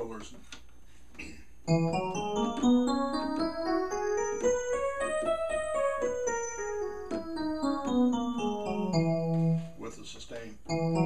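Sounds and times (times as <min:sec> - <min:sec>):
electric piano melody: 0:01.6 - 0:10.0, 0:10.6 - 0:11.0.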